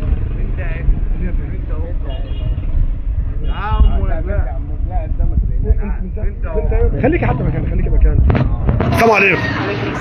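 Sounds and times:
steady low rumble: 0.0s - 9.1s
people talking and calling out: 0.0s - 10.0s.

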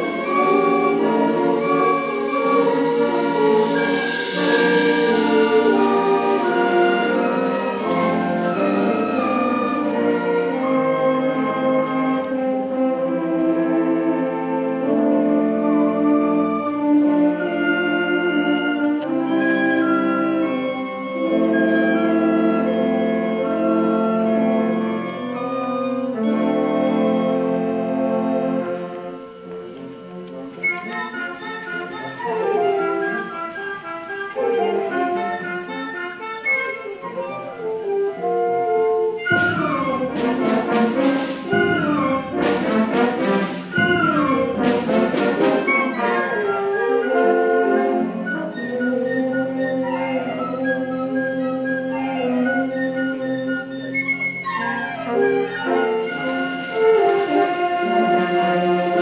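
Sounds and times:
concert band playing: 0.0s - 59.0s
percussion strikes: 2.9s - 12.5s, 39.3s - 46.1s, 51.9s - 53.2s.

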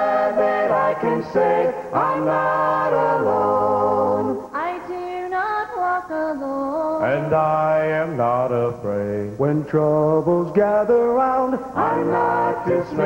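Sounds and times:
gospel group singing in harmony: 0.0s - 5.4s, 7.0s - 13.0s.

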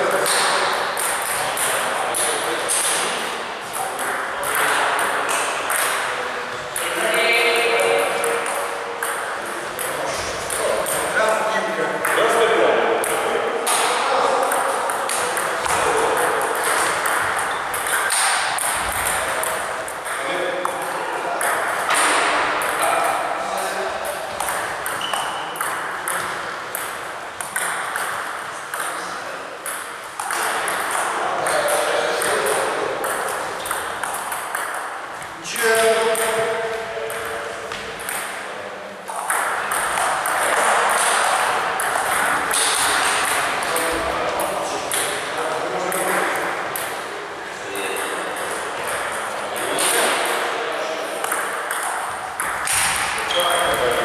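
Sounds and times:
table tennis balls clicking: 0.0s - 6.1s, 6.7s - 11.1s, 13.0s - 23.2s, 24.0s - 36.5s, 37.1s - 38.5s, 39.1s - 47.0s, 47.8s - 50.5s, 51.1s - 54.0s
voices in background: 0.0s - 27.0s.

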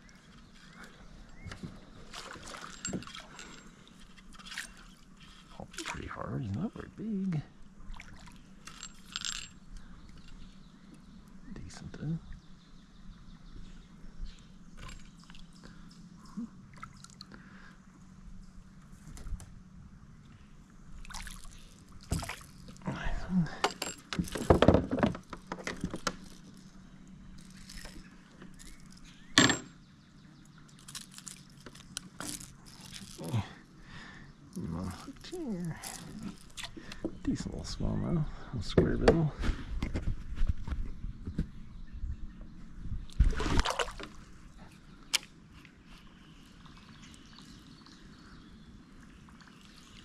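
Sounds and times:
small water splashes: 2.0s - 3.4s, 7.8s - 8.5s, 16.7s - 17.4s, 21.0s - 22.8s, 43.1s - 44.4s.

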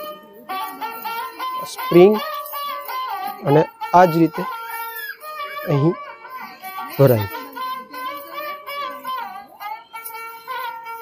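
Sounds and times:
high voice singing: 7.0s - 7.5s.

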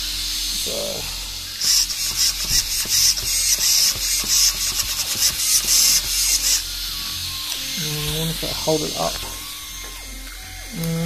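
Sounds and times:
steering servo buzzing: 0.0s - 11.0s.

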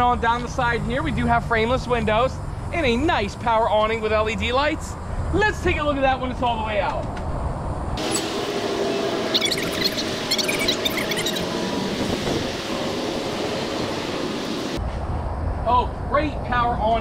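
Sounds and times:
awning motor whine: 8.0s - 14.8s.

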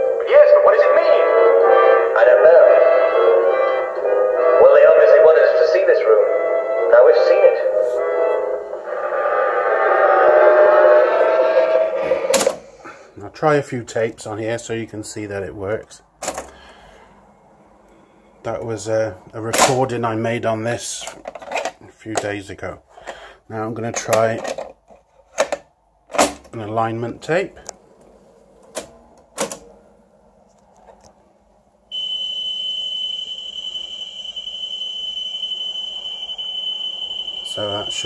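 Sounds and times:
steady test tone: 31.9s - 38.0s.

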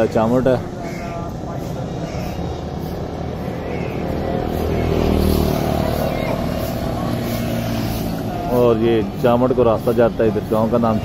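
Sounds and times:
steady low rumble: 0.0s - 10.8s
motor vehicle engine passing: 0.0s - 11.0s.

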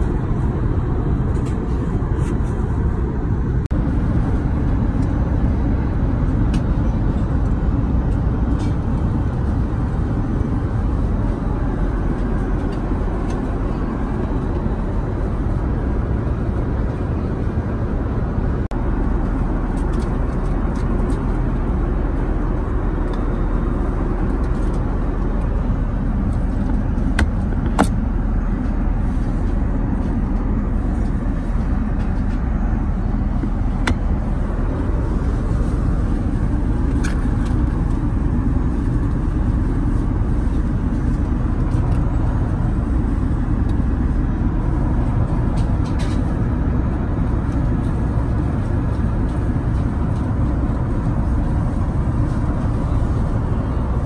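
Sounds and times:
aircraft cabin engine rumble: 0.0s - 54.0s.

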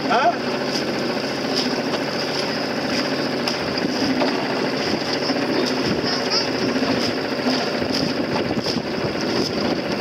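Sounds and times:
small boat motor running: 0.0s - 10.0s.

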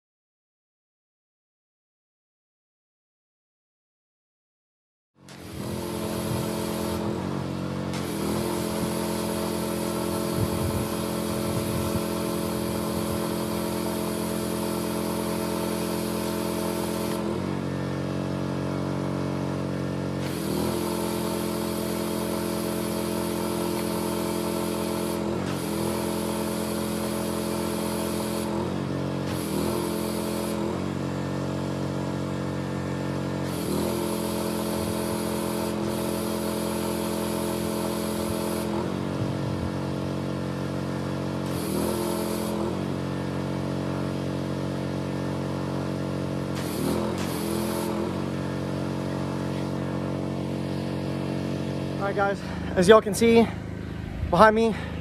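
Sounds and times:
pressure washer engine running: 5.2s - 55.0s
pressure washer spray hissing: 5.3s - 55.0s.

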